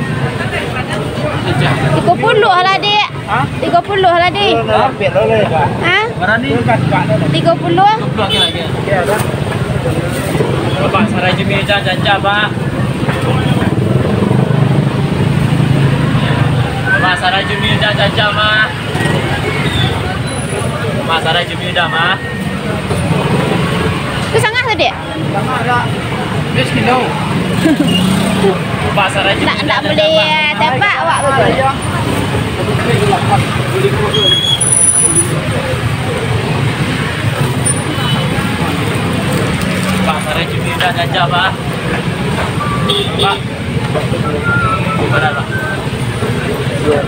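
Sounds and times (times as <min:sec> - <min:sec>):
indistinct voices of vendors: 0:00.0 - 0:47.0.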